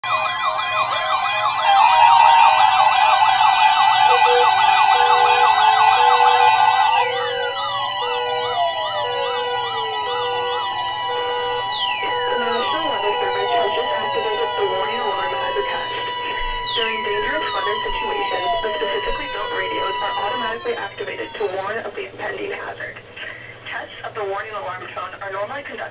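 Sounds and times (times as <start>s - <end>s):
electronic sirens wailing and yelping: 0.0s - 21.8s
on-off beep: 3.8s - 21.7s.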